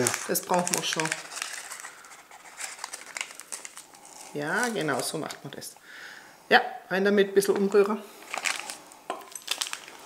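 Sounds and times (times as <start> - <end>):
paper sachet rustling: 0.0 - 5.4, 8.2 - 10.0.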